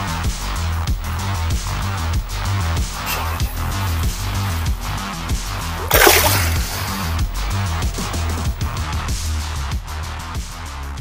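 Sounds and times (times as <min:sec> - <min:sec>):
fish splashing into water: 0:05.8 - 0:08.6.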